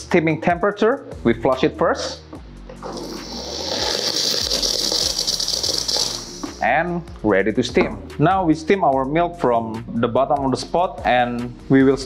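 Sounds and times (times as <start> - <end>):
steam wand hissing: 2.8 - 6.6.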